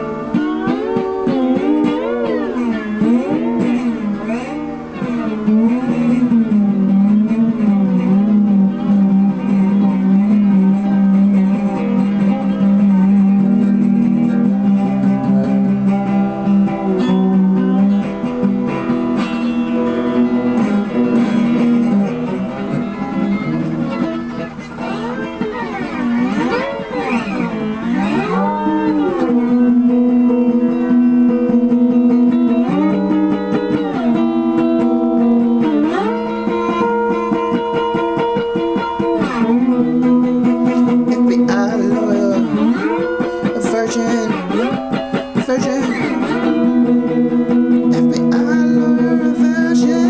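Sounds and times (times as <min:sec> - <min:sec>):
guitar with bending notes: 0:00.0 - 0:50.0.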